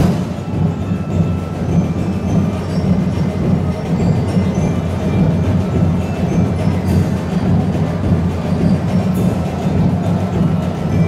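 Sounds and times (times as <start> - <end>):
massed drums playing a rumbling beat: 0.0 - 11.0.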